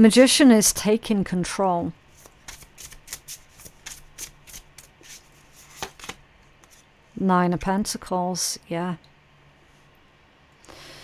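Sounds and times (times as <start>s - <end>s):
cards being shuffled: 2.1s - 6.8s.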